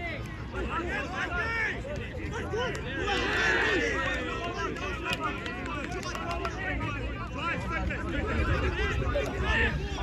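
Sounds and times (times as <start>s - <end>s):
shouts and chatter of people: 0.0s - 10.0s.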